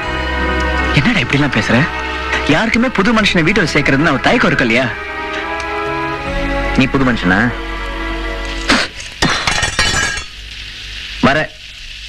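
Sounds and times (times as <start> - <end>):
glass breaking: 9.0 - 10.5.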